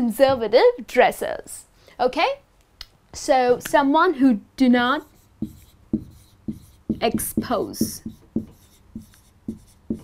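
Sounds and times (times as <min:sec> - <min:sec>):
marker pen on whiteboard: 0:04.7 - 0:10.0.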